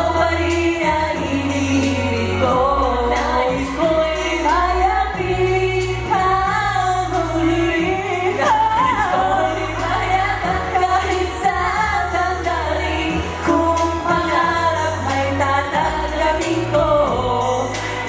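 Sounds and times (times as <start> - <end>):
man and woman singing duet: 0.0 - 18.0
sustained bass line: 0.0 - 18.0.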